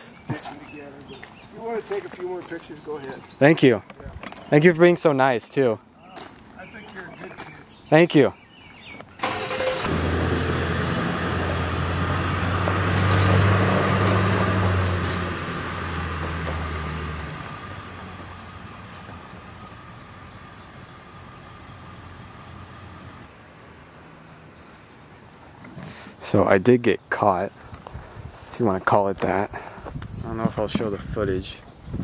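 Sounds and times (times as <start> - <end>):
truck engine running: 9.2 - 23.2
truck driving off: 9.2 - 23.3.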